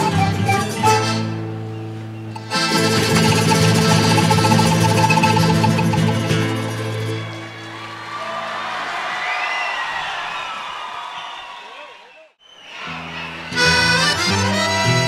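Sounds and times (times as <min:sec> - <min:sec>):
accordions and guitars playing: 0:00.0 - 0:07.6, 0:13.4 - 0:15.0
audience crowd noise: 0:01.7 - 0:15.0.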